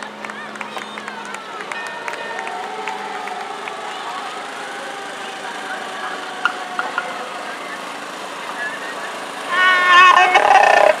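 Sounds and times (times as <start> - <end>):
street noise: 0.0 - 11.0
voices: 0.0 - 11.0
fire truck horn: 1.0 - 11.0.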